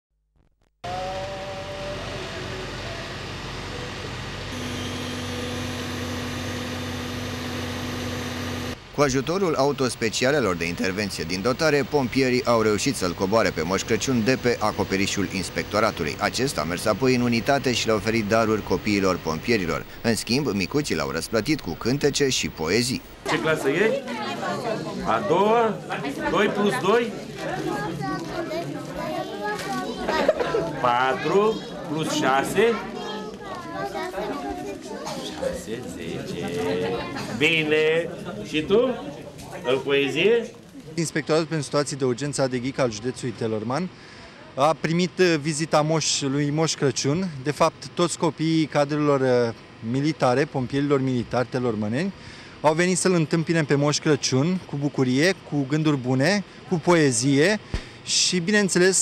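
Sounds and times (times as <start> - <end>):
truck engine running: 10.6 - 23.2
children chattering: 23.3 - 37.4.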